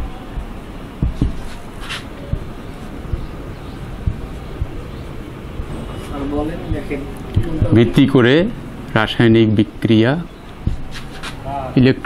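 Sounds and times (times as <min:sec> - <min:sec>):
steady rumbling background noise: 0:00.0 - 0:12.0
marker tapping on whiteboard: 0:01.0 - 0:01.6, 0:10.6 - 0:11.0.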